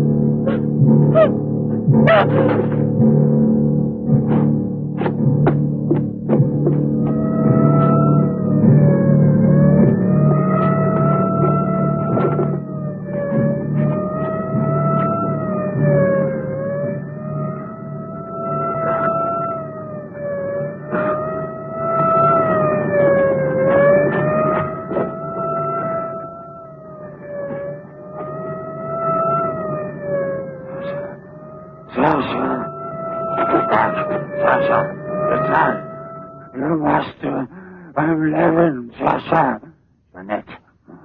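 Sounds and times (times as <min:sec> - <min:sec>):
police siren wailing: 0:00.0 - 0:39.6.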